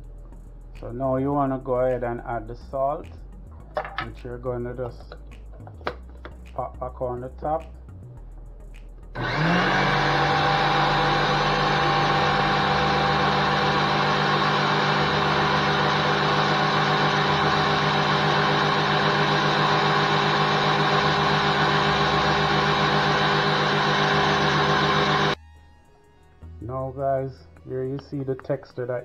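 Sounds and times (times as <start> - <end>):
blender motor grinding nuts: 9.2 - 25.4
motor rising whine: 9.2 - 25.4.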